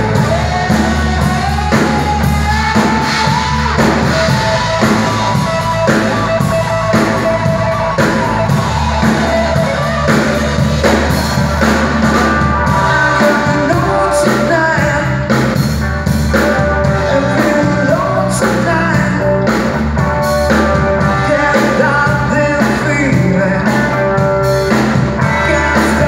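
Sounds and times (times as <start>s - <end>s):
lead vocals singing: 0.0s - 15.6s, 16.8s - 19.7s, 20.8s - 24.2s, 25.0s - 26.0s
bass guitar: 0.0s - 26.0s
drum kit: 0.0s - 26.0s
electric guitar: 0.0s - 26.0s.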